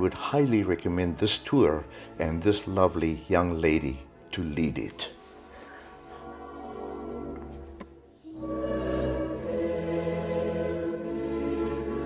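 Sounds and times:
choir singing held chords: 8.2s - 12.0s.

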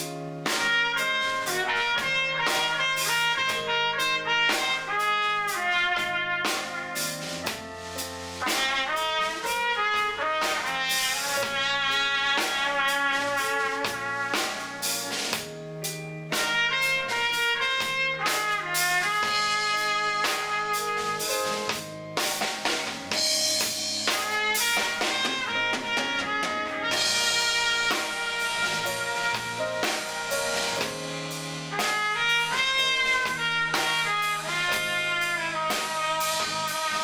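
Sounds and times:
drum kit: 0.0s - 37.0s
electric bass: 0.0s - 37.0s
trumpet melody: 0.0s - 37.0s.

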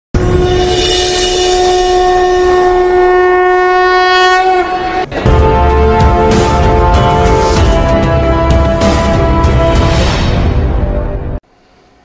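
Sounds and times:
long horn blast: 0.2s - 11.4s
intro music with heavy bass: 5.1s - 11.4s.

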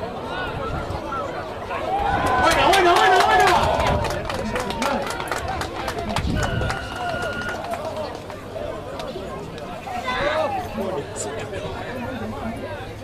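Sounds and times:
people shouting and cheering: 0.0s - 9.0s
hand claps: 2.2s - 8.4s.

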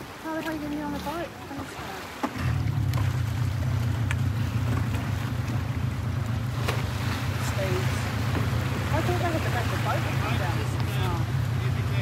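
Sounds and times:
boat motor running: 0.0s - 12.0s.

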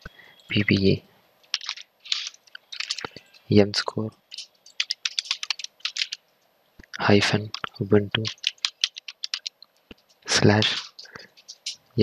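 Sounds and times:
keyboard keystroke clicks: 4.3s - 6.2s, 7.5s - 9.6s.

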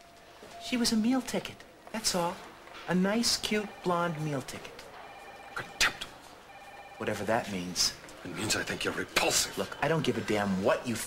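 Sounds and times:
telephone ringing faintly: 0.0s - 10.3s.

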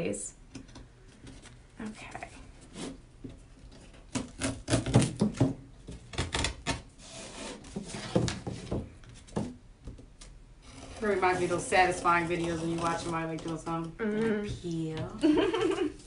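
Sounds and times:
craft knife cutting canvas: 4.1s - 5.3s, 6.1s - 8.3s, 10.6s - 13.6s.

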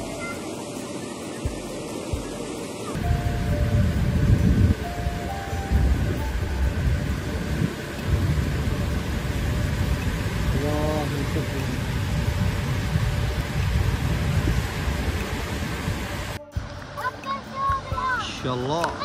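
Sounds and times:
rain rushing: 0.0s - 19.0s.

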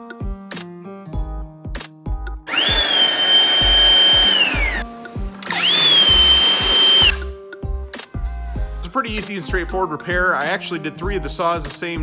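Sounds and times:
background music: 0.0s - 12.0s
battery chainsaw high whine: 2.5s - 4.8s, 5.4s - 7.2s.

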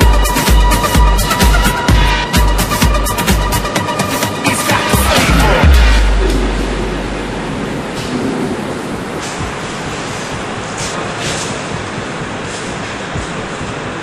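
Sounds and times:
large room background noise: 0.0s - 14.0s
deep bass note: 4.7s - 9.2s.

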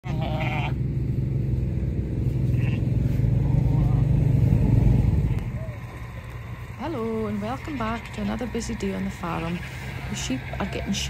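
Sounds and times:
lamb bleating: 0.0s - 0.8s, 2.4s - 2.8s
sheep call: 0.0s - 0.8s
low engine rumble: 0.0s - 11.0s.

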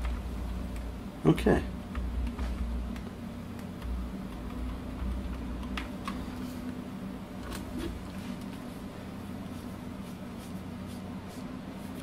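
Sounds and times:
steady low hum: 0.0s - 12.0s
computer keyboard clicks: 1.9s - 6.2s.

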